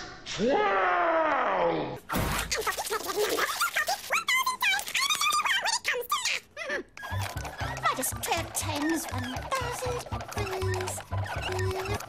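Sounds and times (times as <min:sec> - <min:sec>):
squeaky warbling voice sounds: 0:02.4 - 0:12.0
rapid clicks: 0:07.0 - 0:12.0.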